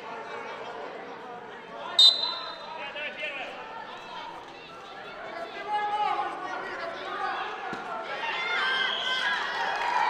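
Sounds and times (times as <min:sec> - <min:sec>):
referee's whistle blast: 0:02.0 - 0:02.7.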